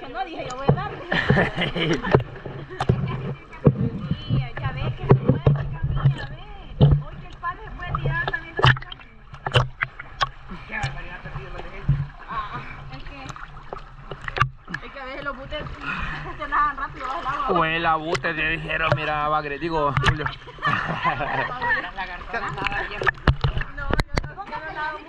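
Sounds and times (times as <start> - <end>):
faint voices: 0.0 - 9.4
water sloshing and splashing: 0.0 - 25.0.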